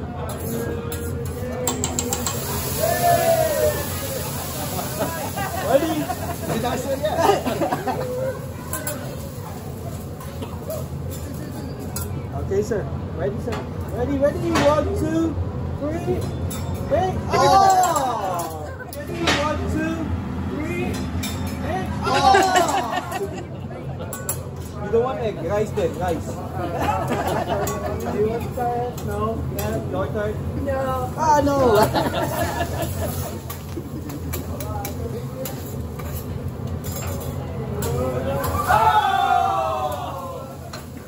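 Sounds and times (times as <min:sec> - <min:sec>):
diners talking and laughing: 0:00.0 - 0:41.0
spatula clicking and scraping on griddle: 0:00.3 - 0:02.5, 0:32.1 - 0:38.6.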